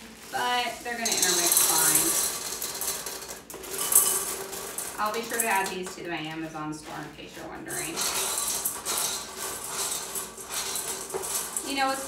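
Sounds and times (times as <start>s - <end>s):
small gems rattling into glass bowl: 0.0s - 7.1s, 7.7s - 12.0s.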